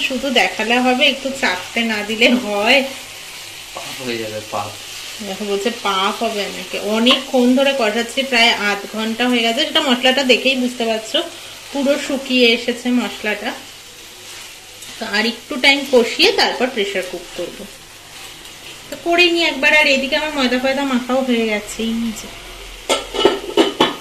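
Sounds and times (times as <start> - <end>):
curry sizzling in a pan: 0.0 - 24.0
spatula stirring food: 0.2 - 21.1.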